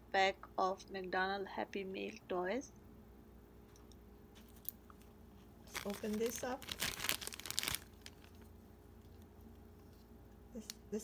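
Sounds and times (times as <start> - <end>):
plastic bag crinkling and tearing: 5.6 - 8.5.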